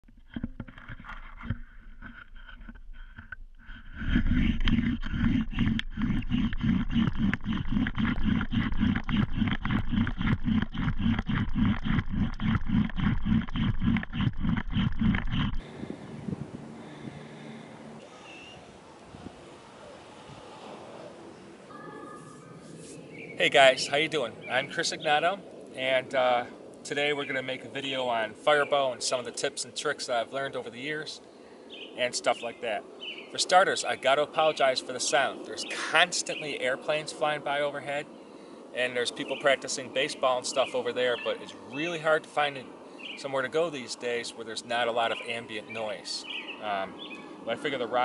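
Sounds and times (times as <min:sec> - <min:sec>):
bow drill friction strokes: 0:00.4 - 0:15.6.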